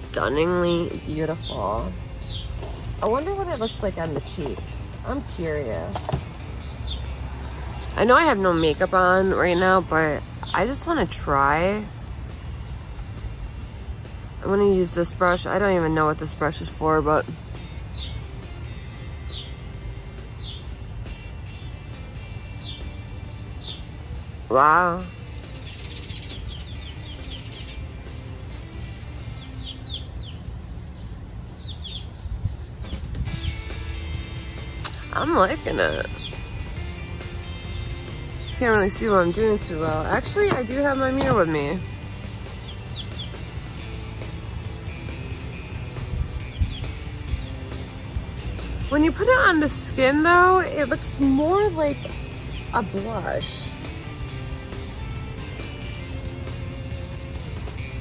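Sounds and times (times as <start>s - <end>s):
high bird chirp: 0.2s - 11.5s, 17.6s - 44.2s, 44.9s - 54.3s.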